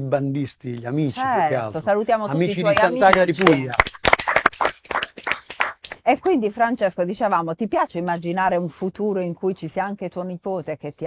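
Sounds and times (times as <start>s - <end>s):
people clapping: 2.5s - 6.4s.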